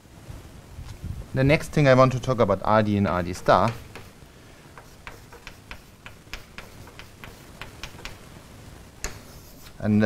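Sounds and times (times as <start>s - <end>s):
chalk tapping on blackboard: 3.1s - 8.2s, 9.0s - 9.8s.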